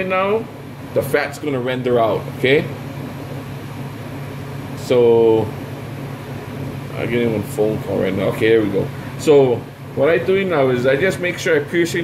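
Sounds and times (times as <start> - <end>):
man speaking: 0.0 - 2.8, 4.8 - 5.6, 6.9 - 12.0
fan humming: 0.0 - 12.0.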